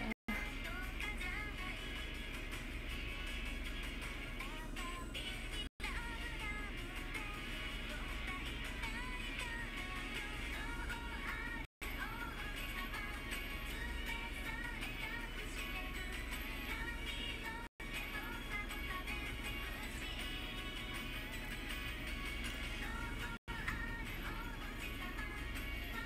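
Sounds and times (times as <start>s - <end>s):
pop song with sung melody: 0.0s - 26.0s.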